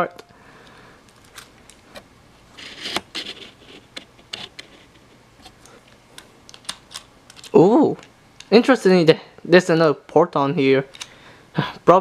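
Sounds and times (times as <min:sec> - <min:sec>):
screwdriver scraping plastic: 0:02.6 - 0:05.0.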